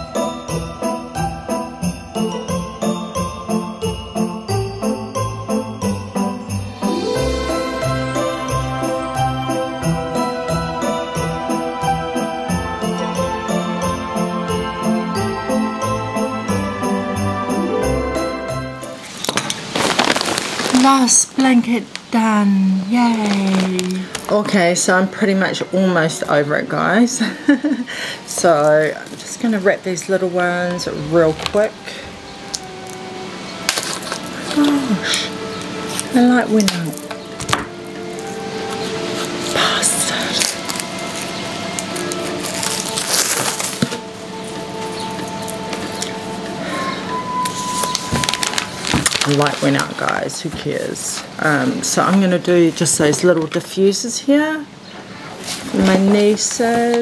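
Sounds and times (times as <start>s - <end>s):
festive holiday music with sleigh bells: 0.0s - 19.2s
soft background music: 0.0s - 21.4s, 22.8s - 57.0s
wrapping paper crackling: 19.0s - 22.2s, 22.8s - 24.5s, 30.9s - 46.8s, 47.4s - 53.5s.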